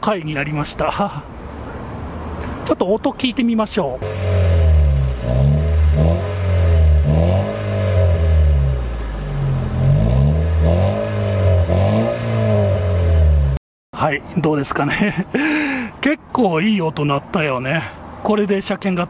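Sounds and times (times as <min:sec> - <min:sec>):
car engine idling: 0:04.0 - 0:13.6
car engine revving: 0:04.0 - 0:13.6.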